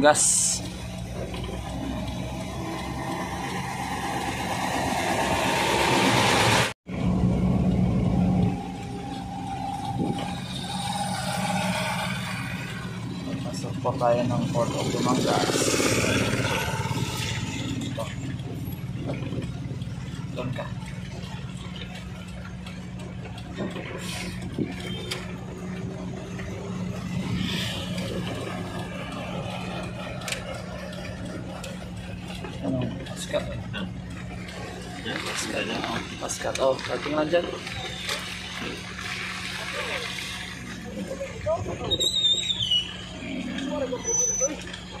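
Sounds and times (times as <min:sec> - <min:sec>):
engine idling: 0:00.0 - 0:45.0
indistinct voices talking: 0:27.8 - 0:45.0.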